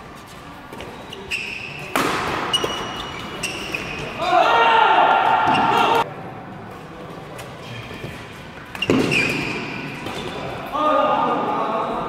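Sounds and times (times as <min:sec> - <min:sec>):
shoes squeaking on court floor: 0:00.0 - 0:04.3, 0:05.3 - 0:06.1, 0:06.7 - 0:10.7.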